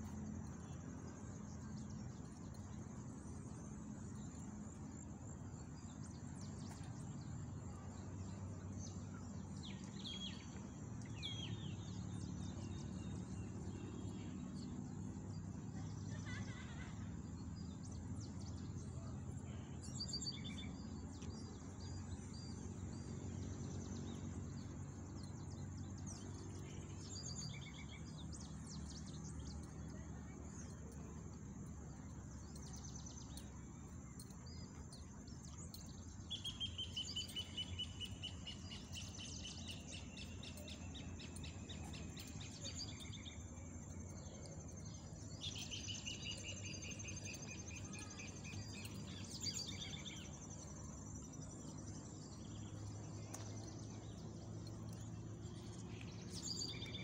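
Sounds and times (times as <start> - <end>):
low background rumble: 0.0 - 57.0
bird calls: 15.8 - 18.0.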